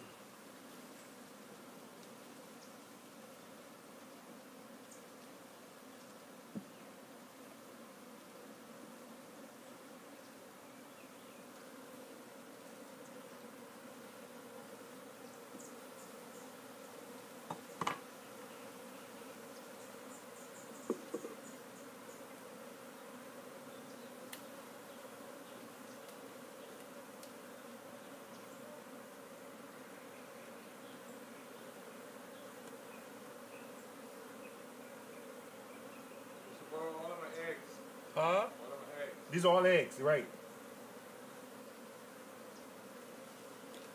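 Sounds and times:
honeybees buzzing: 0.0s - 43.9s
light knocks: 20.9s - 21.4s.

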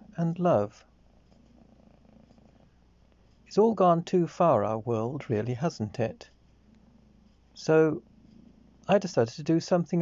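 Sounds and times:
faint fluttering low hum: 0.0s - 10.0s.

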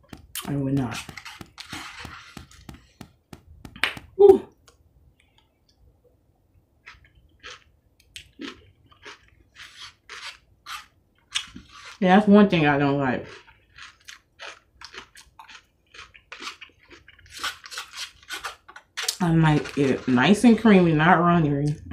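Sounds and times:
chewing and mouth sounds: 6.8s - 12.0s, 13.2s - 20.1s.

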